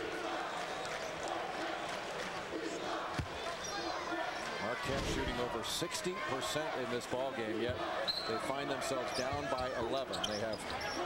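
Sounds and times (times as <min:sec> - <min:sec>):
arena crowd murmur: 0:00.0 - 0:11.0
sneaker squeaks: 0:09.0 - 0:11.0.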